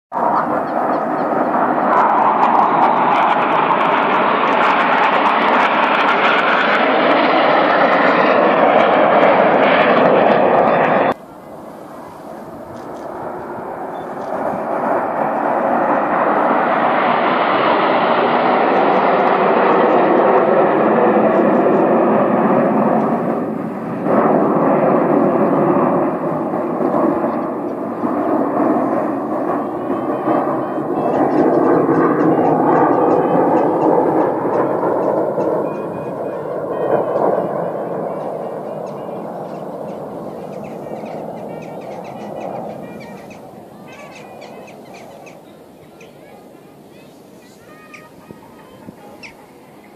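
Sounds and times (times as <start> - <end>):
jet aircraft flying overhead: 0.1 - 49.9.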